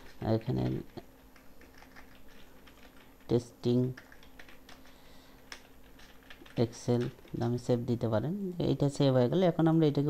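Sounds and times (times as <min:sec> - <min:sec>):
computer keyboard typing: 0:00.0 - 0:07.7.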